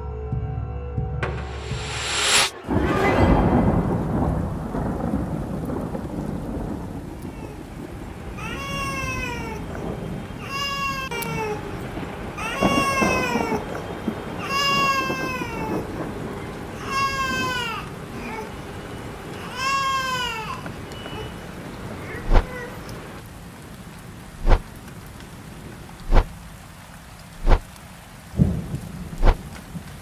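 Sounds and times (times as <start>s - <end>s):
thunder rumble: 1.4s - 30.0s
rain: 1.6s - 30.0s
baby crying: 8.4s - 9.7s, 10.4s - 11.7s, 12.4s - 13.7s, 14.4s - 16.0s, 16.8s - 18.6s, 19.4s - 21.4s, 22.0s - 22.9s.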